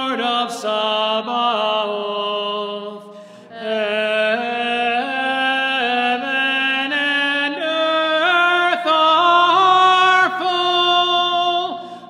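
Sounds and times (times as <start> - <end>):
slow liturgical chant: 0.0 - 12.0.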